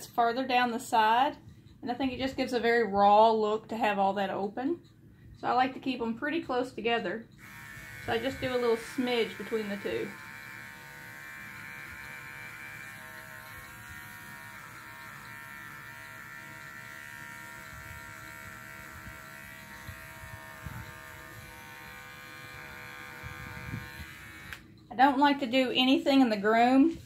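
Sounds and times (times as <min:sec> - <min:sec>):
electric clipper buzzing: 0:07.4 - 0:24.8.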